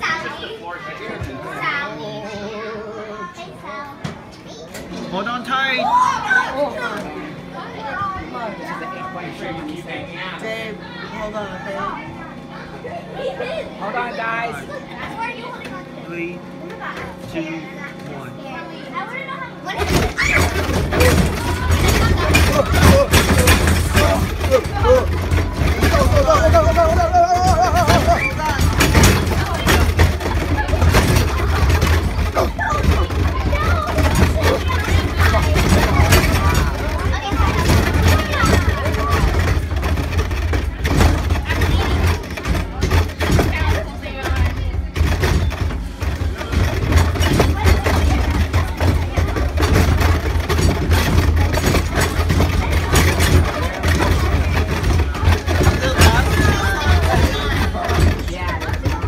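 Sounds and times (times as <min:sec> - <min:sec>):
ride shaking rumble: 0:05.9 - 0:59.0
irregular clattering: 0:19.7 - 0:59.0.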